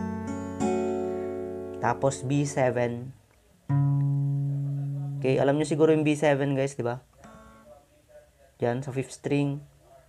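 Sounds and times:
acoustic guitar chord ringing: 0.0s - 3.1s, 3.7s - 5.6s, 7.2s - 7.8s.

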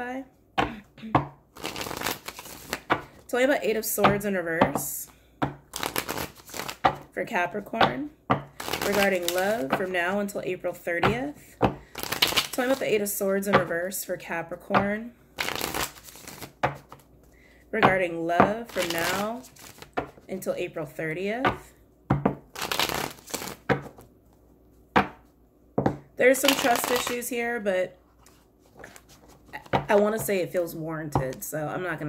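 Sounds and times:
cards being shuffled: 1.5s - 3.2s, 5.7s - 7.0s, 8.6s - 9.9s, 11.8s - 13.0s, 15.4s - 17.1s, 18.6s - 20.2s, 22.5s - 24.4s, 26.3s - 27.2s, 28.2s - 30.2s.

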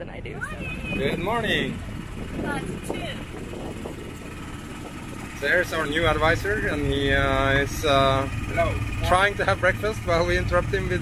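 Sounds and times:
boat motor rumbling: 0.0s - 11.0s.

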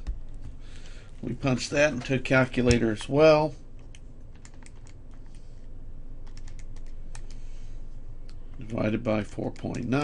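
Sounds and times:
calculator keys clicking: 3.8s - 5.0s.

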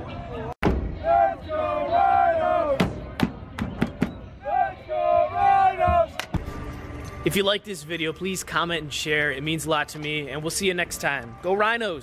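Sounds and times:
crowd chanting: 0.8s - 3.2s, 4.4s - 6.2s.

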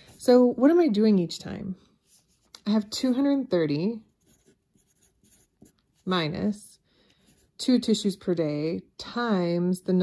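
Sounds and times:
pencil writing on paper: 4.1s - 6.1s.

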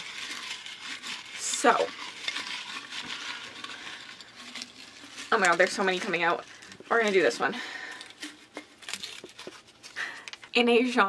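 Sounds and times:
paper slips rustling in a jar: 0.0s - 10.2s.

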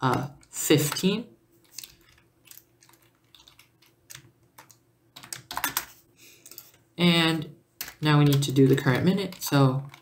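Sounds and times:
keyboard typing clicks: 1.8s - 5.9s.

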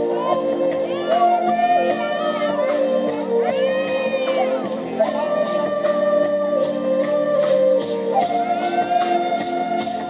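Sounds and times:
amplified backing music: 0.0s - 10.0s.

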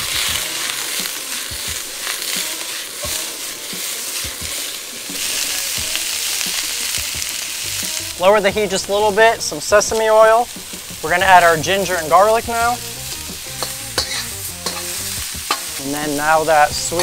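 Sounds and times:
vegetables sizzling in oil: 0.0s - 17.0s
wok knocking: 9.9s - 17.0s.

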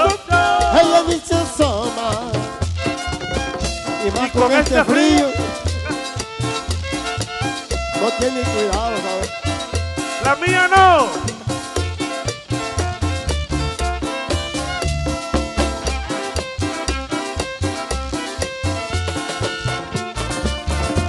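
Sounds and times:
strummed acoustic guitar: 0.0s - 21.0s
upright bass notes: 0.0s - 21.0s
violin melody with slides: 2.7s - 21.0s.

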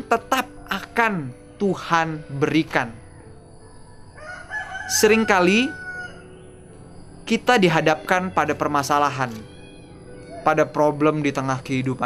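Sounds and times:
rooster crowing: 3.1s - 6.6s.

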